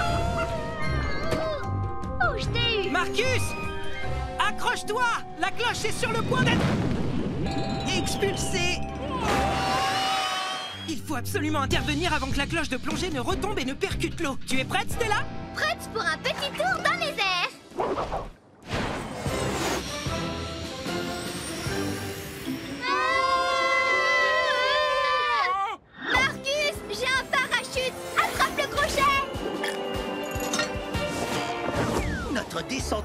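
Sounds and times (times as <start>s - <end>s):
cartoon action music: 0.0s - 3.5s, 26.1s - 33.0s.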